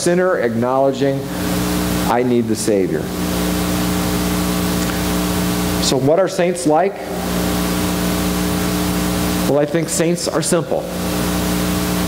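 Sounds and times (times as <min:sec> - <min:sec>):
speech: 0:00.0 - 0:01.3, 0:02.1 - 0:03.1, 0:05.8 - 0:07.1, 0:09.5 - 0:10.9
steady hum: 0:00.0 - 0:12.0.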